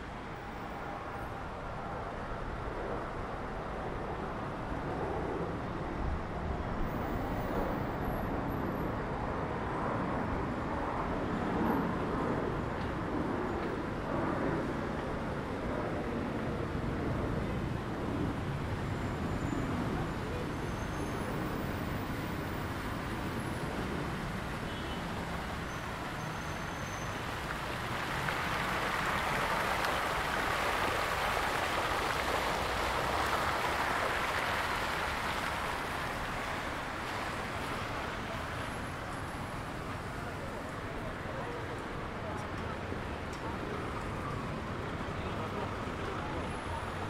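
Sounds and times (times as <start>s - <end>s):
road traffic: 0.0s - 47.0s
fountain jets splashing: 16.9s - 47.0s.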